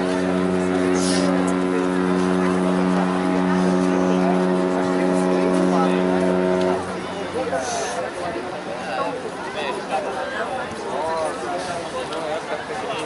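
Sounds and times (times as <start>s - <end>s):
deep ship horn blast: 0.0s - 8.1s.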